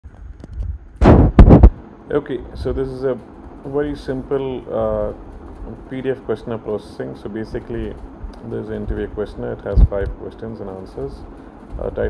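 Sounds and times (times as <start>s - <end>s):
loud sudden thumps: 1.0s - 1.8s.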